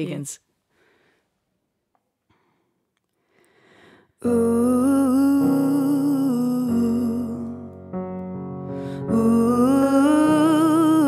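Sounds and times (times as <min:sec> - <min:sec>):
keyboard sustained chords: 0:04.2 - 0:11.0.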